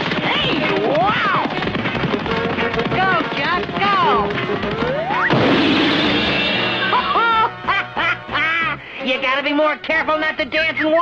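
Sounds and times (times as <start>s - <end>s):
music: 0.0s - 11.0s
cartoon crash: 5.1s - 7.4s.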